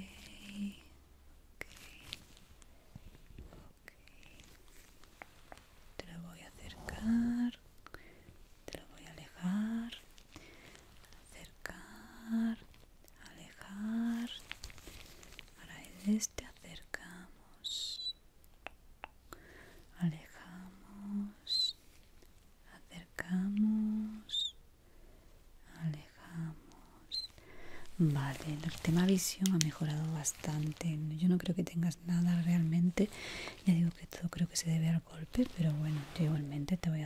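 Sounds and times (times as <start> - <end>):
woman whispering: 0.0 - 1.0, 1.6 - 2.4, 3.5 - 7.6, 8.6 - 10.2, 11.0 - 18.2, 19.9 - 21.8, 22.6 - 24.6, 25.6 - 37.0.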